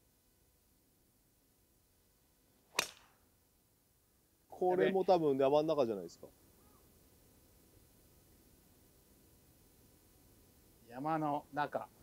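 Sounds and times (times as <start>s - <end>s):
golf club striking ball: 2.7s - 3.2s.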